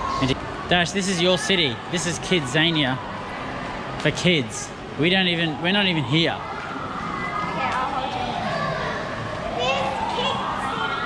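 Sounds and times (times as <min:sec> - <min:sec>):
background chatter: 0:00.0 - 0:11.0
children calling out: 0:06.6 - 0:11.0.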